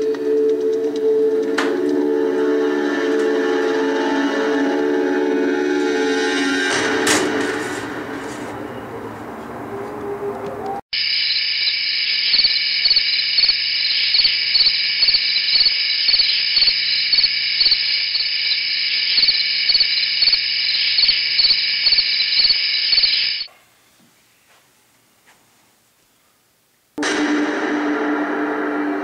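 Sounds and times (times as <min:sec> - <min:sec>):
crickets chirping: 0:11.0 - 0:23.5.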